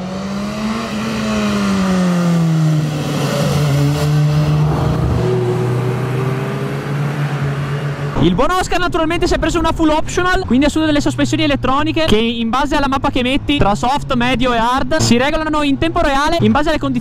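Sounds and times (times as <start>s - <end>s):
motorcycle riding past: 0.0s - 8.2s.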